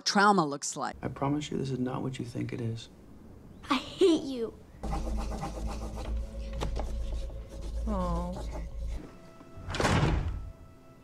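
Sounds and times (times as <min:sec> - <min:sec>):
quiet sustained film music: 0:04.7 - 0:11.0
sudden thud: 0:09.7 - 0:10.5.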